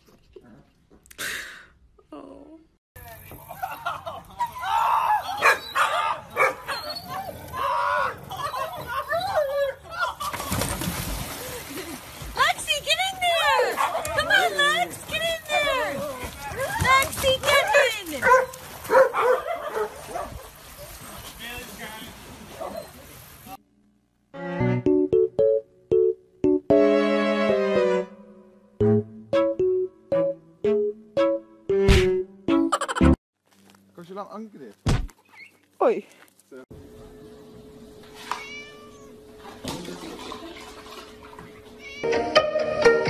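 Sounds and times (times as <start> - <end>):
dog whining and yipping: 5.2 - 7.6, 8.4 - 9.9.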